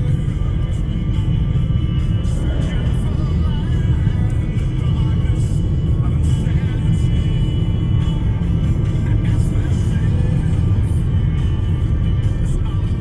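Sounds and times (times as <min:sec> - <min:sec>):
car road rumble: 0:00.0 - 0:13.0
music playing: 0:00.0 - 0:13.0.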